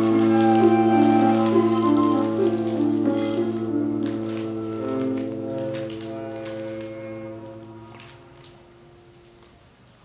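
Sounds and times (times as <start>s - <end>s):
french horn: 0.0s - 9.4s
piano: 0.0s - 10.0s.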